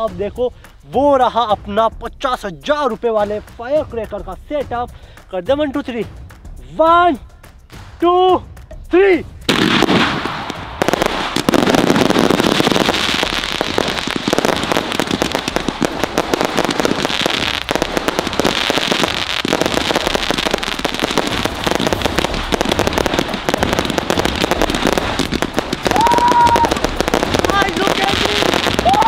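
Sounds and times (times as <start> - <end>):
fireworks crackling bursts: 0.0 - 8.0, 8.6 - 29.0
firework launch thumps: 9.4 - 29.0.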